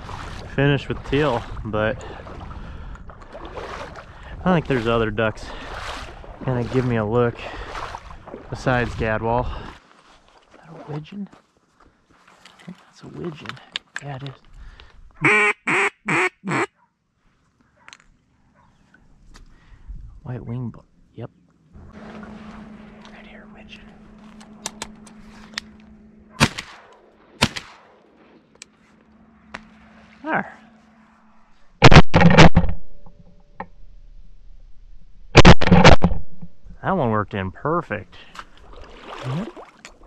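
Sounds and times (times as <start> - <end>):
duck call quacks: 15.2 - 16.7.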